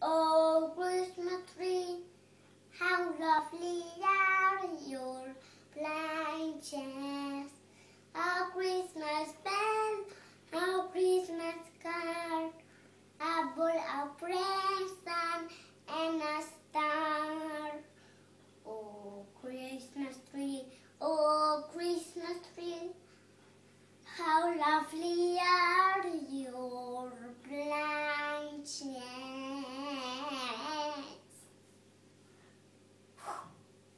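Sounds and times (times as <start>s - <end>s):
boy singing unaccompanied: 0.0s - 2.1s, 2.7s - 12.6s, 13.2s - 17.9s, 18.6s - 23.0s, 24.1s - 31.4s.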